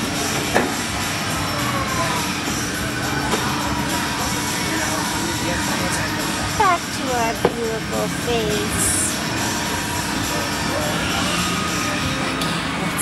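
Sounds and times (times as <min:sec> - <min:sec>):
music: 0:00.0 - 0:13.0.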